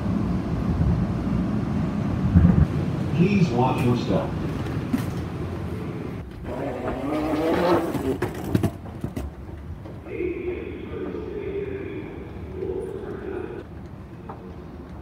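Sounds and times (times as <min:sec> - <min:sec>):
rolling luggage noise: 0:00.0 - 0:10.1
escalator hum with whine: 0:00.0 - 0:15.0.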